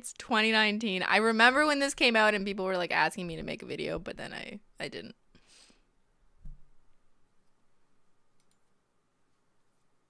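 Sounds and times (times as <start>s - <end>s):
faint computer mouse clicks: 8.4s - 8.7s.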